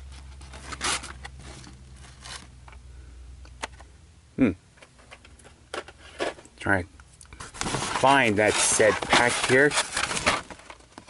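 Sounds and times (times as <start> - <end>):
rustling plastic packaging: 0.0 - 2.5, 7.4 - 11.0
low steady hum: 0.0 - 11.0.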